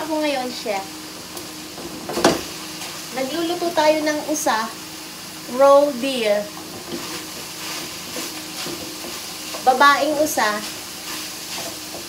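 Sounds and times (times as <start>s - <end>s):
meat sizzling in a frying pan: 0.0s - 12.0s
wooden spoon stirring: 6.7s - 12.0s.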